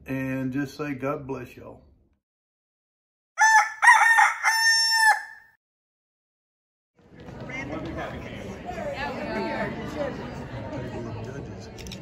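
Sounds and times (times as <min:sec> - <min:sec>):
rooster crowing: 0:03.4 - 0:05.6.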